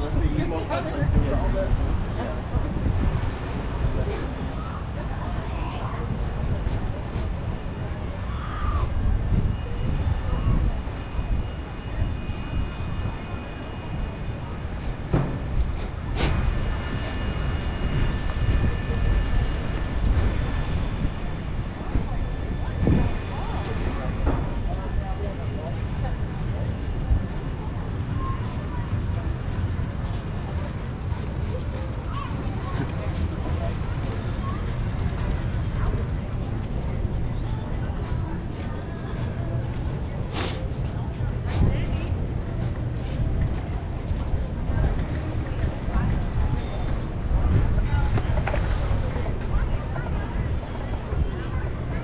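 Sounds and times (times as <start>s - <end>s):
faint voices of passersby: 0.0s - 52.0s
wind rumbling on microphone: 0.0s - 52.0s.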